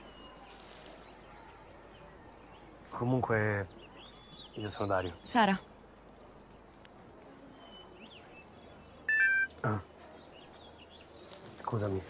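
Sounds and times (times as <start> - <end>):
smartphone notification chime: 9.1 - 9.5.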